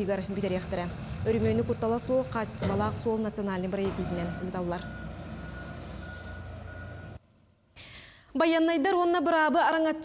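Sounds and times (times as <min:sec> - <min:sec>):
wheel loader engine and road noise: 0:00.0 - 0:07.2.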